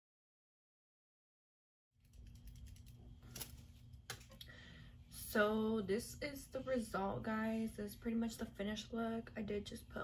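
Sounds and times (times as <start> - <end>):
faint room hum: 2.0 - 10.0.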